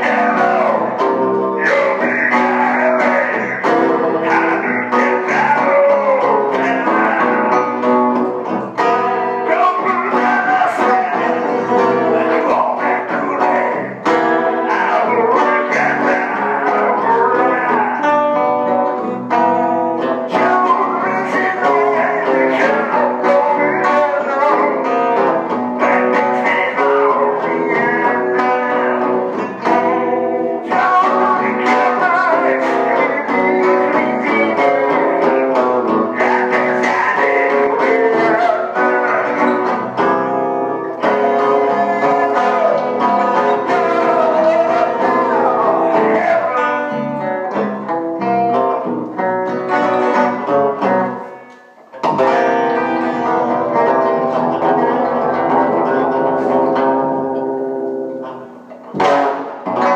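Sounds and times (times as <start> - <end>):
guitar playing: 0.0 - 59.9
man singing: 0.0 - 59.9.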